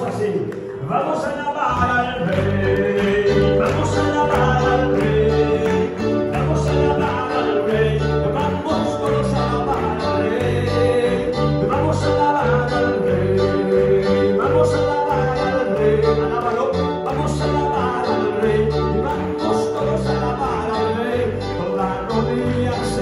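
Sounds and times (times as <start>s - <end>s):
worship band playing: 0.0s - 23.0s.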